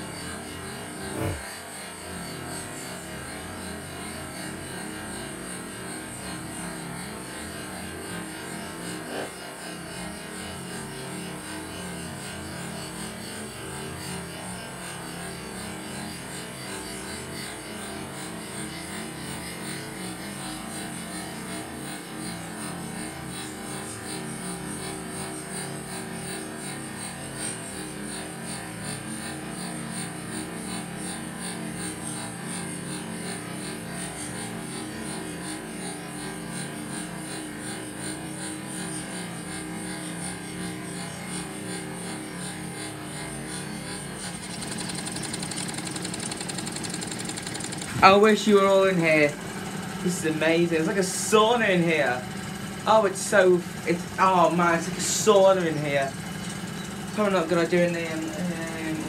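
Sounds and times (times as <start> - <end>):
model steam engines ticking: 16.7 - 59.0.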